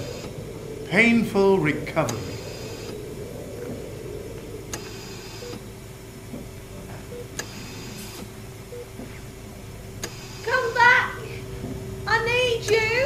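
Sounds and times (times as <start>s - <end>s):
machine hum with held tone: 0.0s - 13.0s
sharp click and short hiss: 7.4s - 8.3s, 10.0s - 10.5s.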